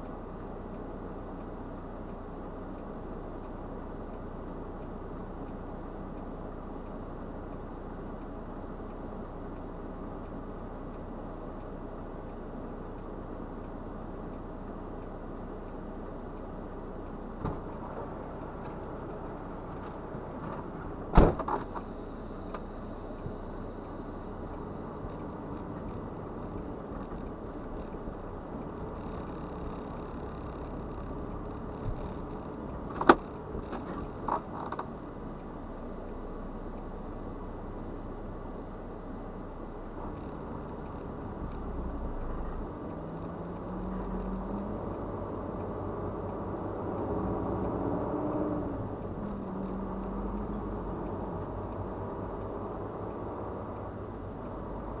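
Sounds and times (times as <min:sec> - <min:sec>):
diesel truck engine: 0:00.0 - 0:55.0.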